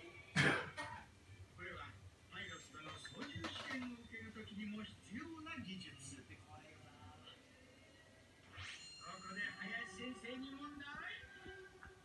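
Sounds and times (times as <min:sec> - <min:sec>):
loud cough: 0:00.4 - 0:01.1.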